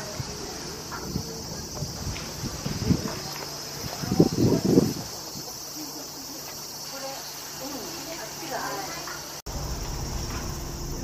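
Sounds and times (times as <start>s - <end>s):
faint distant voices: 0.0s - 9.4s
cicadas chorus: 0.0s - 11.0s.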